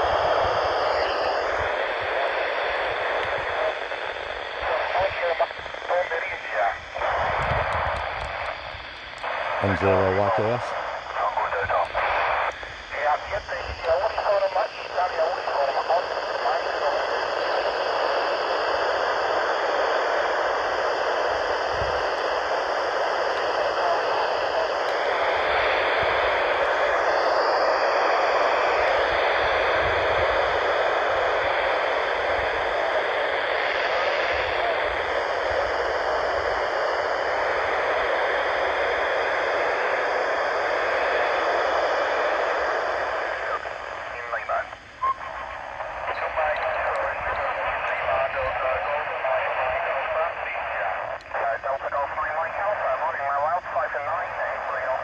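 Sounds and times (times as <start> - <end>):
choppy radio voices: 0.0 - 55.0
radio static noise: 0.0 - 55.0.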